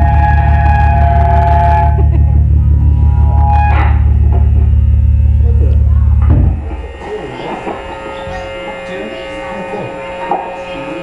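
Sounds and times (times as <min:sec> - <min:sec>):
heavy pulsing low guitar drone: 0:00.0 - 0:11.0
high ringing guitar tone: 0:00.0 - 0:11.0.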